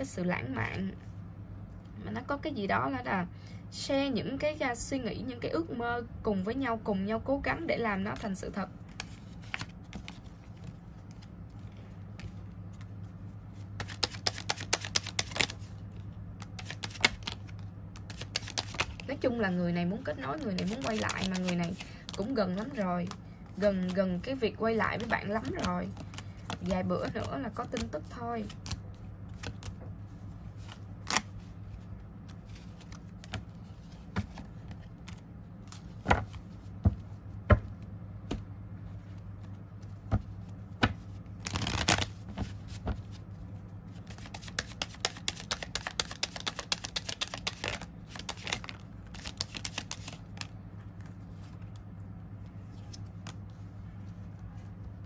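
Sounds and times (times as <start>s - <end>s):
steady low hum: 0.0s - 55.0s
cards being shuffled: 8.9s - 13.0s, 13.6s - 19.2s, 20.1s - 24.0s, 24.9s - 29.8s, 30.6s - 37.0s, 39.1s - 43.2s, 44.0s - 51.8s.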